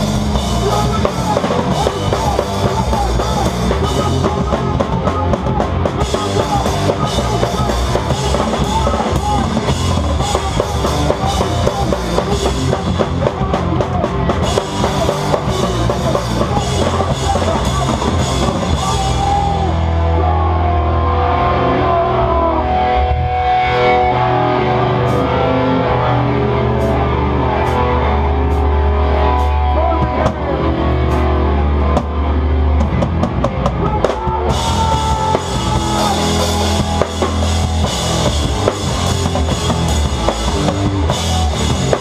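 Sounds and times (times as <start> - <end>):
drum kit: 0.0 - 21.1, 21.8 - 42.0
hardcore band playing loud: 0.0 - 42.0.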